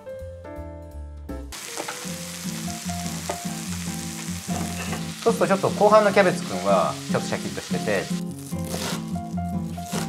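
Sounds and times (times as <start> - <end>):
food sizzling in a frying pan: 1.6 - 10.0.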